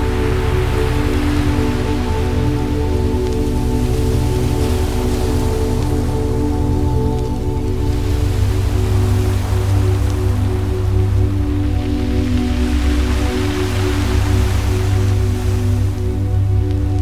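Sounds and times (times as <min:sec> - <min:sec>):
deep bass drone: 0:00.0 - 0:17.0
hissing noise layer: 0:00.0 - 0:17.0
sustained synth pad chords: 0:00.0 - 0:17.0.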